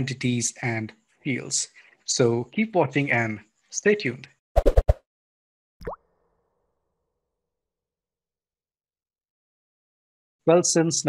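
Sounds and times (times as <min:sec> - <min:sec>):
rising pop sound effect: 0:04.6 - 0:05.0.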